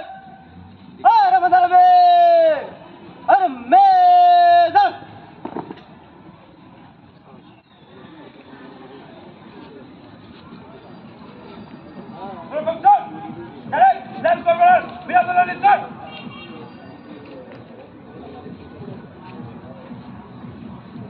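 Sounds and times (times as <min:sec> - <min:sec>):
low background murmur: 0:00.4 - 0:21.0
person shouting commands: 0:01.0 - 0:02.7, 0:03.3 - 0:05.1, 0:12.6 - 0:16.1.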